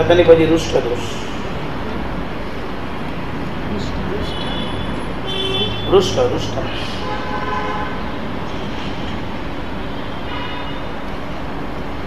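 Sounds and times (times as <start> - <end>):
low background noise: 0.0 - 12.0.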